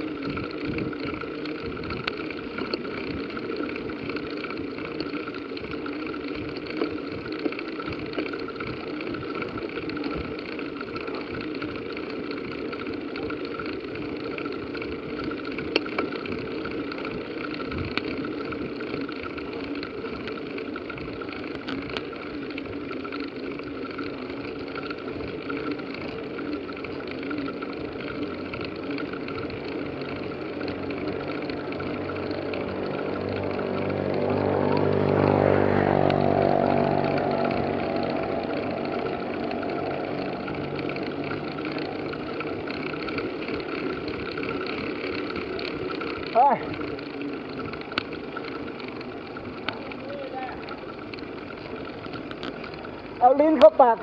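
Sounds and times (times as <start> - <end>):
bicycle riding on paved road: 0.0 - 54.0
motor vehicle passing: 23.1 - 54.0.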